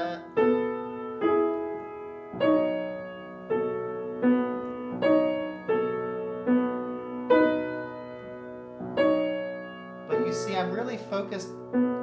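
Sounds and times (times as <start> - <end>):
grand piano chords ringing: 0.0 - 12.0.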